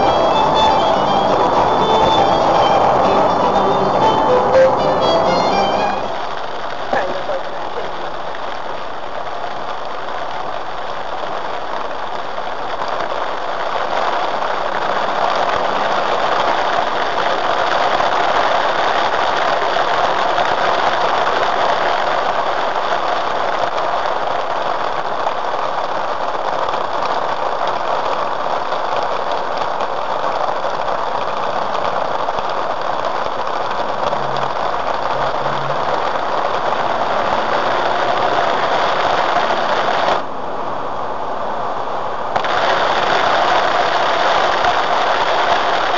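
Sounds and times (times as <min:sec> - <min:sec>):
heavy rain on a car: 0:00.0 - 0:45.9
tyre spray on wet road: 0:00.0 - 0:45.9.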